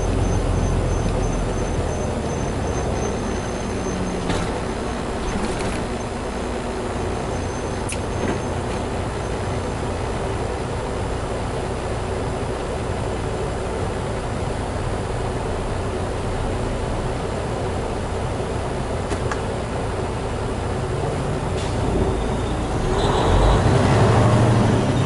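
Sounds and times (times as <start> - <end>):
truck diesel engine rumble: 0.0 - 25.0.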